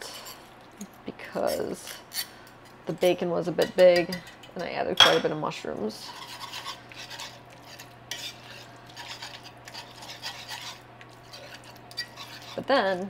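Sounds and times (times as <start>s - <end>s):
whisk scraping a pan: 0.0s - 0.5s, 5.9s - 13.0s.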